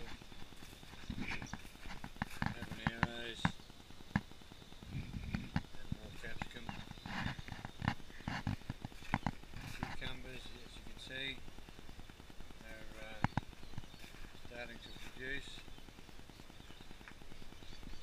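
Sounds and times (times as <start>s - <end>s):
footsteps crunching on gravel: 0.0s - 3.6s, 5.2s - 11.4s, 12.6s - 15.8s
leaves brushed by hand: 14.0s - 15.7s.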